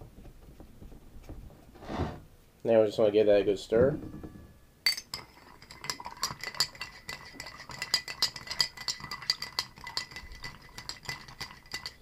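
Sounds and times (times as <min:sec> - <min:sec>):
ice and spoon clinking on glass: 0:04.8 - 0:12.0.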